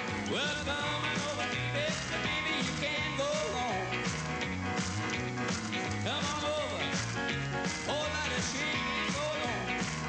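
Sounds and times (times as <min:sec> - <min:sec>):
rock and roll band playing: 0:00.0 - 0:10.0
man singing sliding notes: 0:00.2 - 0:03.9, 0:05.9 - 0:07.0, 0:07.8 - 0:10.0.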